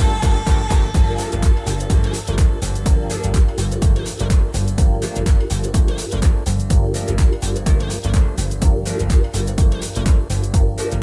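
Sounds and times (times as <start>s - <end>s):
deep tech house music: 0.0s - 11.0s
four-on-the-floor kick drum: 0.0s - 11.0s
off-beat hi-hats: 0.0s - 11.0s.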